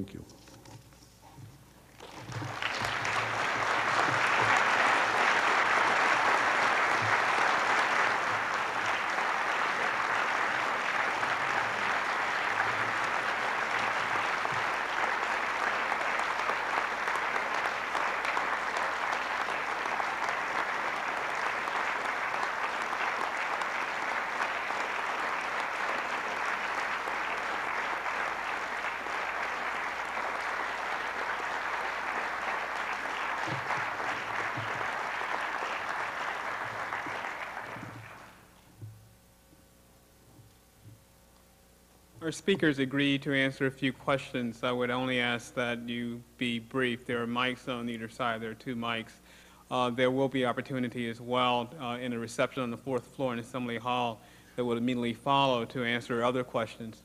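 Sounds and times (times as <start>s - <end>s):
large audience applauding: 1.9s - 38.5s.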